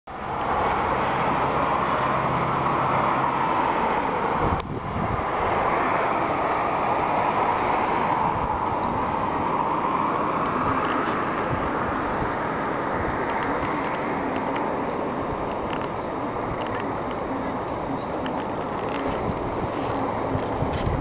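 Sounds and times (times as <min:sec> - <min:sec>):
road traffic noise: 0:00.1 - 0:21.0.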